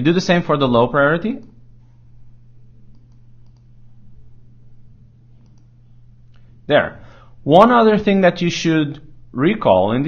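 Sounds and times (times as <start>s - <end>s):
low electrical hum: 0.0s - 10.0s
computer mouse clicks: 2.9s - 3.7s, 5.4s - 6.5s.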